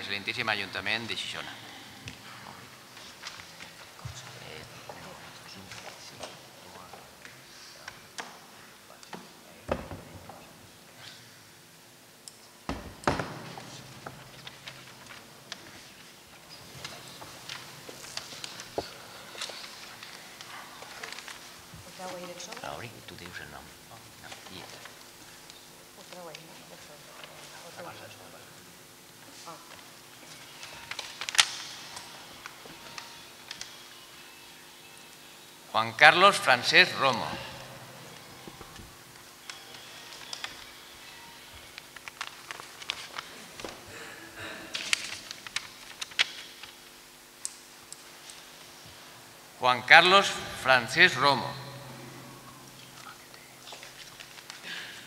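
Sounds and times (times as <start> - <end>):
paper rustling: 3.0 - 4.3, 13.6 - 22.7, 30.2 - 33.8, 41.5 - 43.8, 44.7 - 47.0, 53.0 - 55.0.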